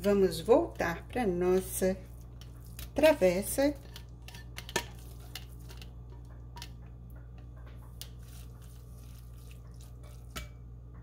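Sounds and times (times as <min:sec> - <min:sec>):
steady low hum: 0:00.0 - 0:11.0
soft squishy sounds: 0:00.7 - 0:10.6
spatula scraping and tapping pan: 0:01.4 - 0:10.6.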